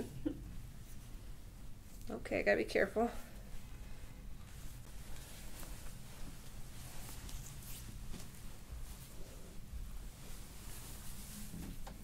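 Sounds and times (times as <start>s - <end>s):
low room rumble: 0.0s - 12.0s
hands rustling on skin and towel: 4.4s - 11.8s.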